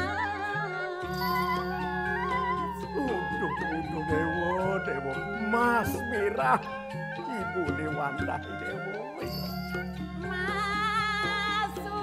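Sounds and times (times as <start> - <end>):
sustained instrumental accompaniment: 0.0 - 12.0
man singing: 2.3 - 9.5.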